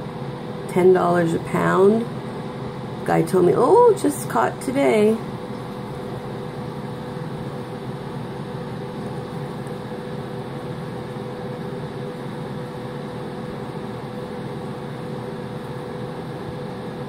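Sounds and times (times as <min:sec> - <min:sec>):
mechanical hum: 0:00.0 - 0:17.0.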